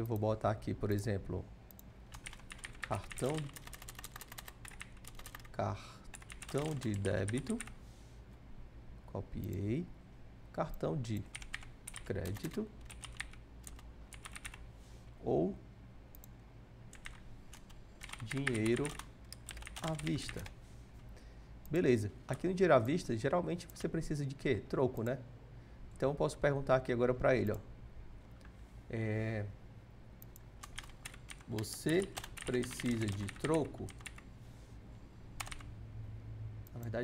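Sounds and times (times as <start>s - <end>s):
low steady hum: 0.0s - 37.0s
computer keyboard keystrokes: 2.1s - 5.5s, 6.1s - 7.7s, 11.2s - 14.6s, 16.9s - 20.5s, 30.2s - 34.2s, 35.4s - 35.7s.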